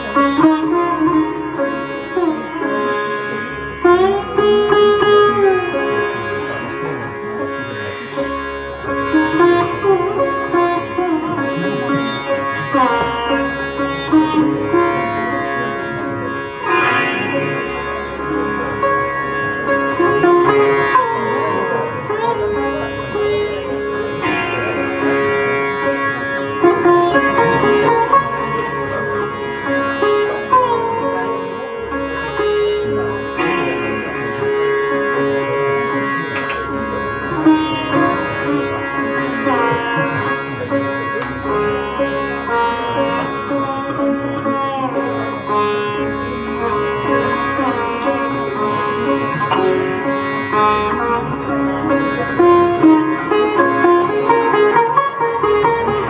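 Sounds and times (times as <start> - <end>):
sitar plucked notes and slides: 0.0 - 56.0
sustained string drone: 0.0 - 56.0.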